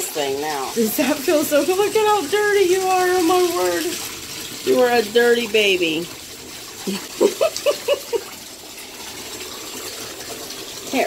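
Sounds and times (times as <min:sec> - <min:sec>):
bathtub tap running: 0:00.0 - 0:11.0.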